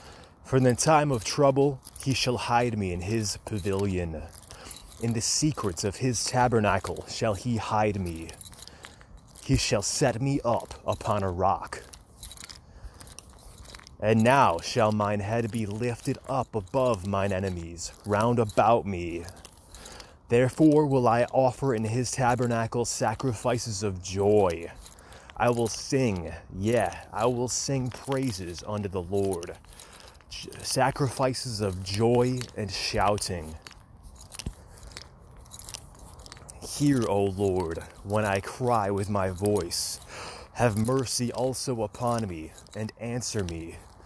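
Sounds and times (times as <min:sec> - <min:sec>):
faint clicks and crackles: 0:00.0 - 0:44.0.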